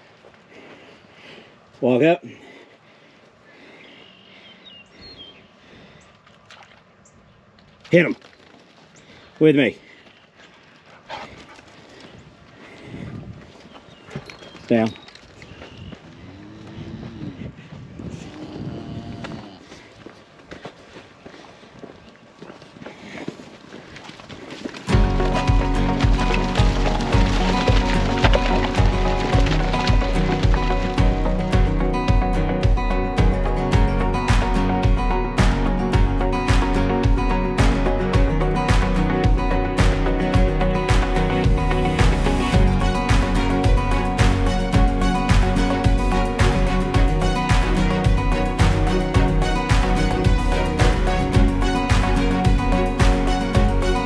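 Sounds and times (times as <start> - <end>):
faint bird chirps: 3.7 - 6.1
cattle lowing: 15.4 - 20.0, 22.5 - 32.2
country music with guitar and beat: 24.8 - 54.0.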